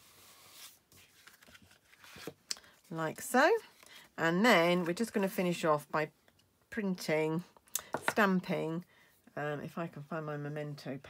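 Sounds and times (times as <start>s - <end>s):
card stock rustling: 0.2s - 2.5s.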